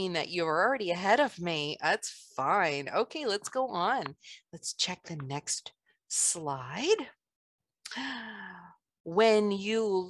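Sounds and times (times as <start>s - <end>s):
woman sighing: 7.9s - 8.7s.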